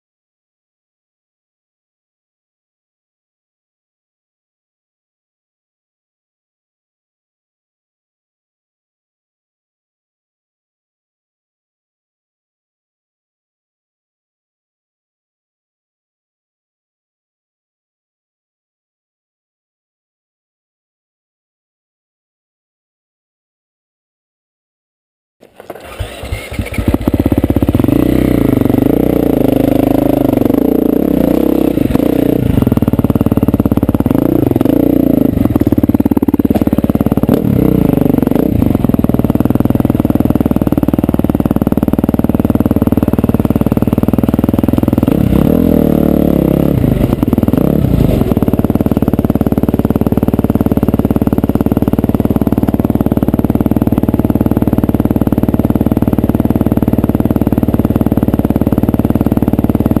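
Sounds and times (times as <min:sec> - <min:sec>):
dirt bike engine revving: 0:25.6 - 1:00.0.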